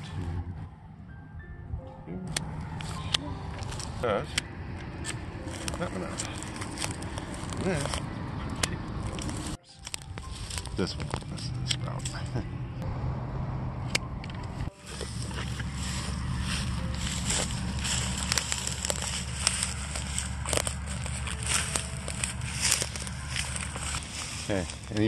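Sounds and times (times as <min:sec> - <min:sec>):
crackles and clicks: 0:04.8 - 0:12.4, 0:16.7 - 0:25.0.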